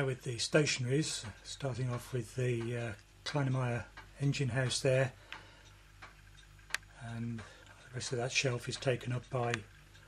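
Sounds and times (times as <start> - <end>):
faint ticking: 0.0 - 10.0
sharp click: 6.0 - 6.9.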